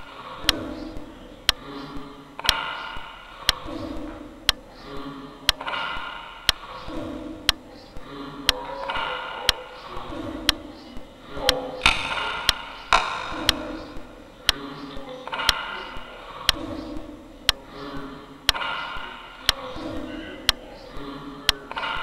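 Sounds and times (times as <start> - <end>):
garbled wordless voice: 0.0 - 2.4, 3.5 - 5.6, 6.5 - 22.0
clock ticking: 0.0 - 22.0.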